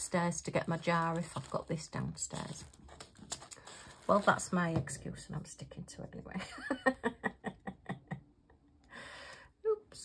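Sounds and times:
woman laughing: 6.4 - 8.5.

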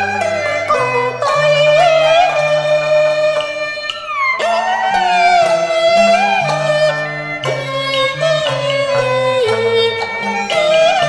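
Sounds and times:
sliding melody line: 0.0 - 11.0.

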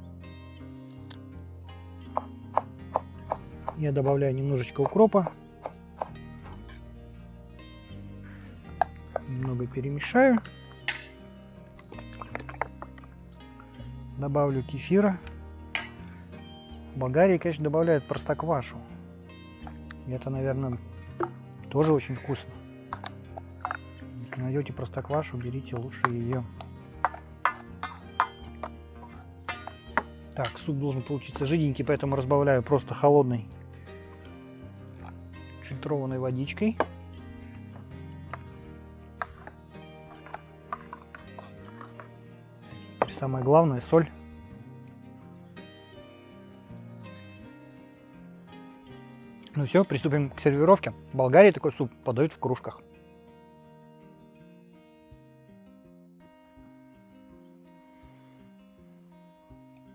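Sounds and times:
background music: 0.0 - 59.9
knife chopping on wooden board: 2.2 - 3.8
metal spoon knocking steel bowl: 10.4 - 11.1, 15.8 - 16.0, 22.9 - 23.8, 25.8 - 30.7, 39.2 - 42.1.

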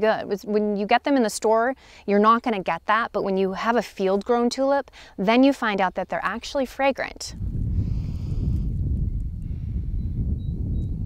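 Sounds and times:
wind buffeting microphone: 7.2 - 11.0.

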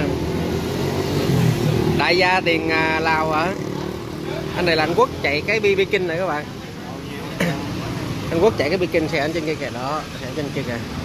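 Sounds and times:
road traffic engines rumbling: 0.0 - 11.0.

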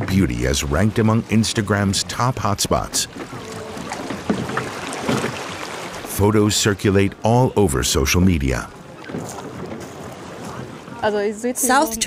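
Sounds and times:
oars splashing in water: 0.0 - 12.0.

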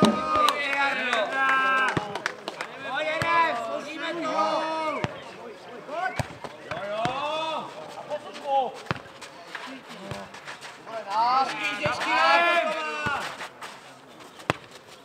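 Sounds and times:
players shouting: 0.0 - 13.5
ball kicked and bouncing: 6.2 - 7.3, 8.8 - 9.3, 10.0 - 10.4, 11.8 - 12.2, 14.4 - 14.8.

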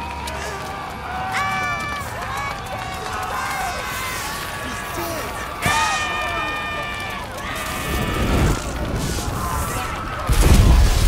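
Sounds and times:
people calling and exclaiming: 0.0 - 11.0
steady noisy background: 0.0 - 11.0.

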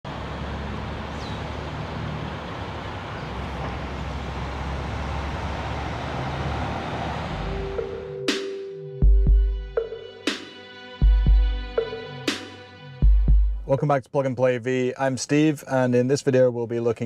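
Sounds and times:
road traffic rumble: 0.0 - 8.2
steady musical tone: 7.3 - 13.8.

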